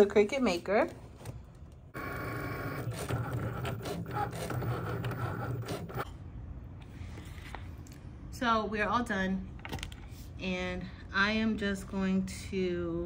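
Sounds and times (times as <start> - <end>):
cutting machine motors whirring: 2.0 - 6.0.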